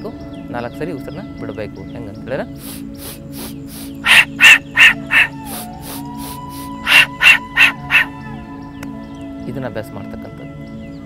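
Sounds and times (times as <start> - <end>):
background music: 0.0 - 11.0
man breathing sharply: 2.6 - 4.2, 5.4 - 7.0.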